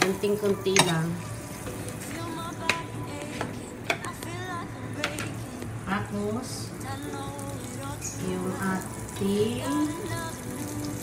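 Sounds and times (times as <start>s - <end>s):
butter sizzling in frying pan: 7.0s - 11.0s.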